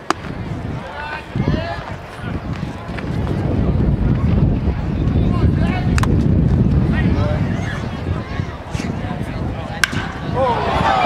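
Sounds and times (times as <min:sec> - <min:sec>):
bat cracking against ball: 0:00.0 - 0:00.3, 0:09.8 - 0:10.2
crowd cheering: 0:09.8 - 0:11.0.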